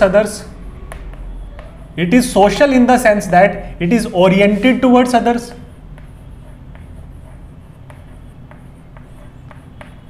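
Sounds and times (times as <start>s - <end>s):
chalk tapping on blackboard: 0.0s - 3.0s, 3.9s - 10.0s
chalk scratching on blackboard: 0.0s - 10.0s.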